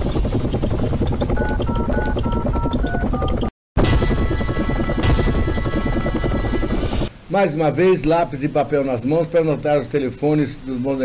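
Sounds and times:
helicopter rotor sound effect: 0.0 - 7.1.

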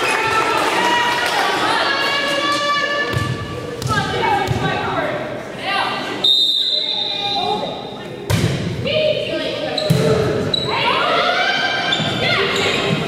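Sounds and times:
people shouting in an echoing hall: 0.0 - 5.0, 10.5 - 13.0
referee's whistle: 6.2 - 7.6.

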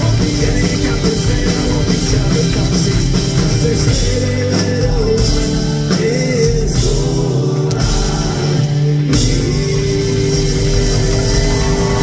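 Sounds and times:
live folk band playing: 0.0 - 12.0.

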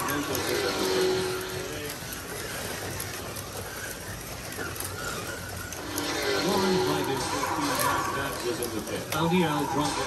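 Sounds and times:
slot cars whirring: 0.0 - 10.0.

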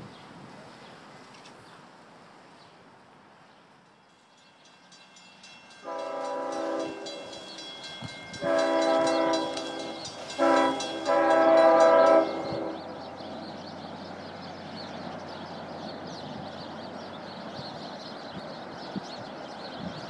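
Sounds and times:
diesel train horn: 5.8 - 7.4, 8.4 - 13.2.

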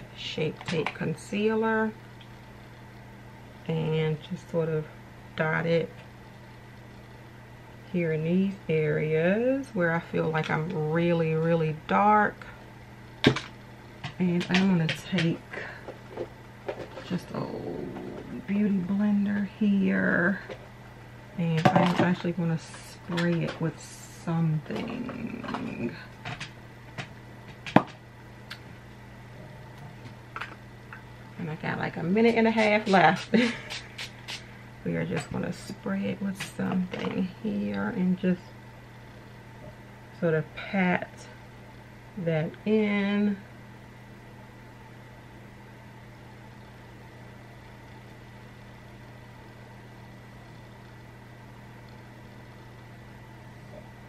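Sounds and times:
steady low hum: 0.0 - 54.0.

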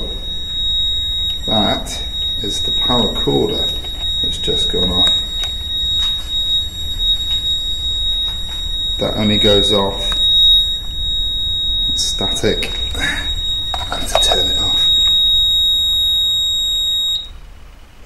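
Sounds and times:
high-pitched electronic alarm tone: 0.0 - 17.4.

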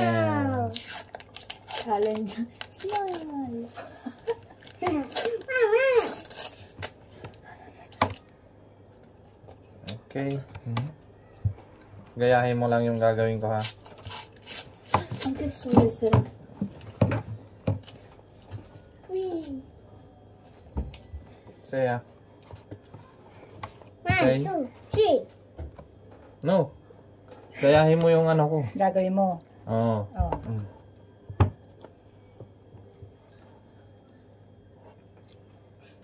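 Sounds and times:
paper wrapper crinkling: 0.6 - 7.0.

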